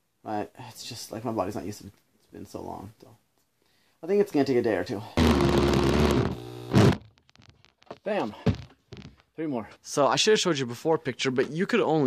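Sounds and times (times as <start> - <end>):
power drill driving a screw: 5.2 - 7.0.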